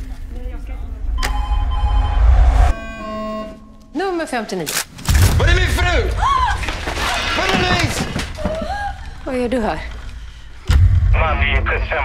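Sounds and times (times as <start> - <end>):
low rumbling swell: 0.6 - 3.0.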